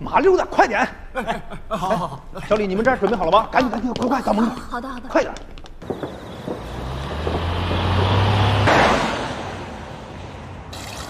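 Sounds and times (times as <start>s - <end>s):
bus engine hum: 5.8s - 11.0s.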